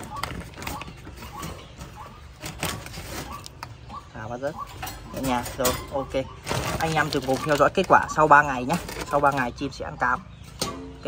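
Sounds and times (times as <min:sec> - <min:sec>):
wire bird cage rattling: 0:04.6 - 0:09.7, 0:10.4 - 0:11.0.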